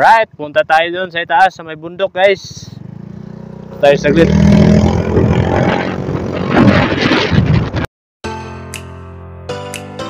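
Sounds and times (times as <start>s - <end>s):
road noise: 1.2s - 7.8s
motorcycle engine running: 2.4s - 6.6s
wind rushing: 2.7s - 7.9s.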